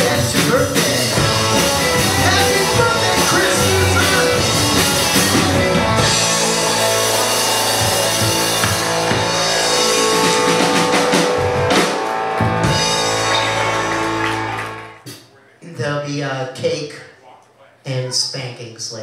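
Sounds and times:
live rock band playing: 0.0 - 15.0.

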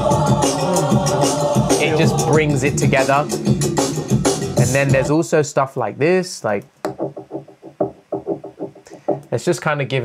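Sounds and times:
fast percussive knocks: 6.8 - 9.3.

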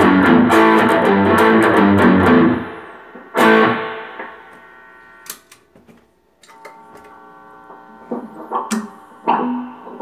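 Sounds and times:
electric guitar chord decaying: 0.0 - 5.3, 6.5 - 10.0
pick clicks on guitar strings: 8.1 - 9.0.

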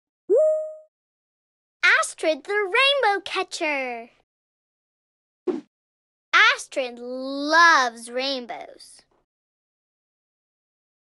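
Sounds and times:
cartoon bloop rising tone: 0.3 - 0.9.

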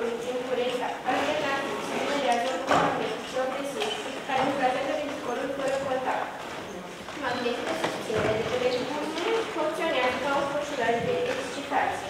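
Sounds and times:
girl reading aloud: 0.0 - 6.4, 7.2 - 12.0.

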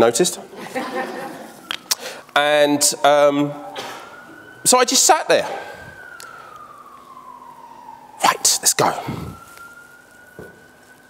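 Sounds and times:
faint wailing siren: 0.0 - 11.0.

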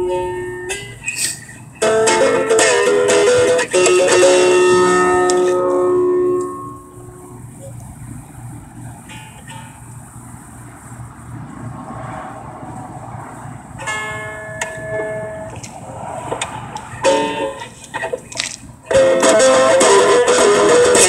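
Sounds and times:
guitar strum: 0.0 - 7.8, 9.0 - 10.0, 13.8 - 15.7, 16.4 - 21.0
guitar strings plucked: 0.0 - 8.1, 8.7 - 10.2, 13.8 - 21.0.

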